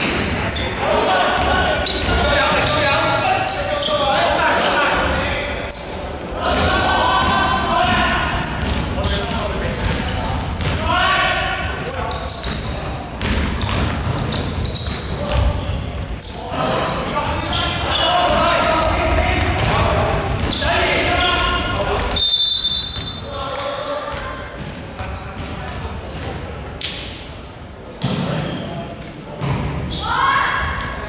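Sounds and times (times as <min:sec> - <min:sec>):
voices in gym: 0:00.0 - 0:31.0
basketball bouncing on court: 0:01.3 - 0:02.9, 0:06.5 - 0:10.9, 0:12.4 - 0:15.7, 0:18.2 - 0:20.7.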